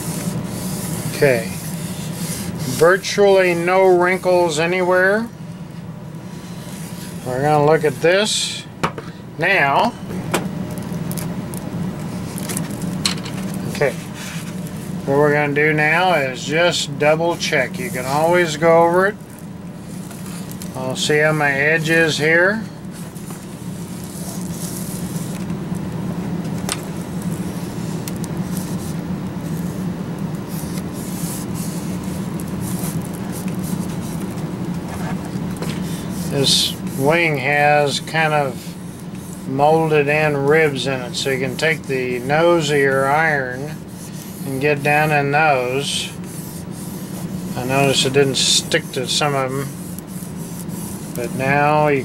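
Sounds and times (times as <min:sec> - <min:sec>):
iron hissing over film: 0:00.0 - 0:04.6, 0:26.9 - 0:52.0
background machinery hum: 0:00.0 - 0:52.0.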